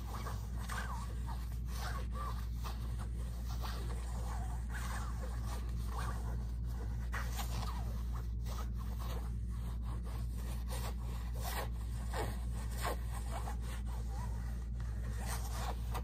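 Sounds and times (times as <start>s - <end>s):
fingers scratching fabric pouch: 0.0s - 16.0s
steady low hum: 0.0s - 16.0s.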